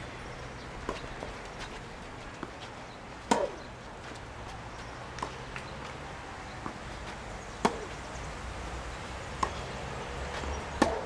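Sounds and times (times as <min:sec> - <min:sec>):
tennis ball struck by racket: 0:03.2 - 0:03.7, 0:07.6 - 0:08.0, 0:09.3 - 0:11.0.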